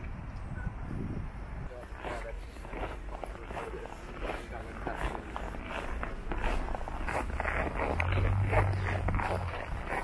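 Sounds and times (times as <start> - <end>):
footsteps crunching on snow: 1.8 - 10.0.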